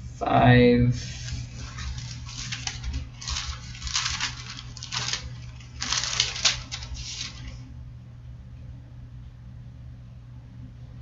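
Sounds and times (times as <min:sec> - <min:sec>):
paper pages rustling: 0:01.0 - 0:07.6.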